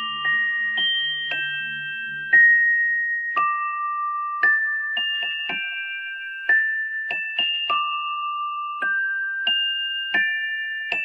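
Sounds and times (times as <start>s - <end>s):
pocket watch chime melody: 0.0s - 11.0s.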